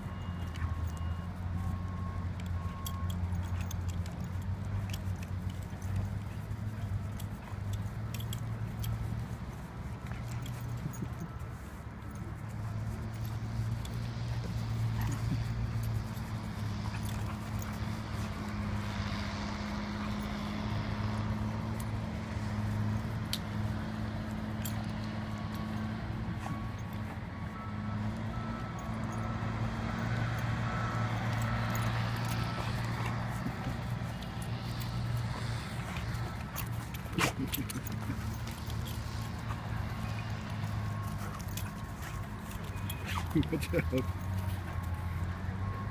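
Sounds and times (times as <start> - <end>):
dogs playing clicks and scuffs: 0.0 - 45.9
traffic hum: 0.0 - 45.9.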